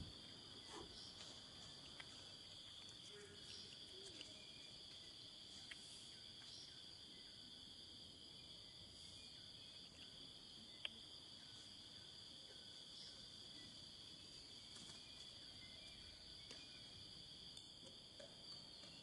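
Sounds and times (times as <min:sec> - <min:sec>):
high-pitched insect chorus: 0:00.0 - 0:19.0.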